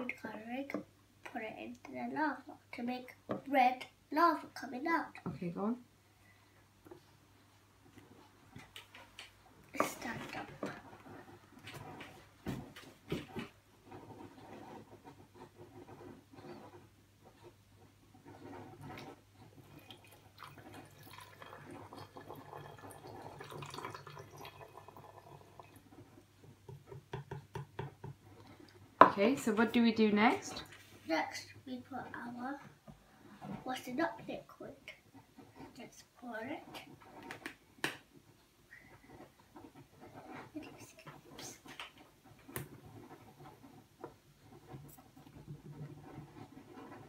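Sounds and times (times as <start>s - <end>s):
liquid trickling into a bottle: 19.7s - 25.8s
plastic cup knocking: 26.6s - 28.2s.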